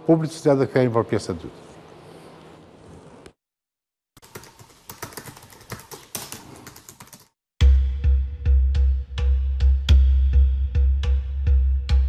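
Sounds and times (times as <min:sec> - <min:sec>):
fast typing on keyboard: 0:04.2 - 0:07.4.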